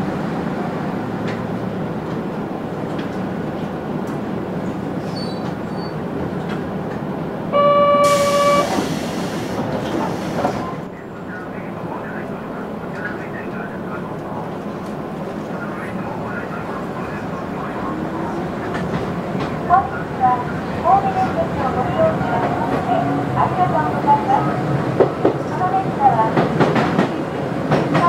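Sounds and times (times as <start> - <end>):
train rumbling over tracks: 0.0 - 28.0
train horn blast: 7.5 - 8.9
air hissing: 8.0 - 10.8.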